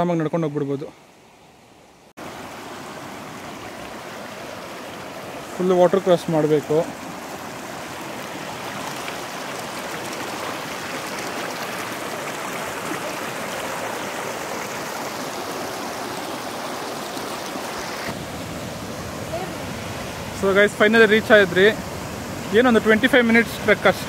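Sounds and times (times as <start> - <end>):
stream flowing over stones: 2.2 - 24.0.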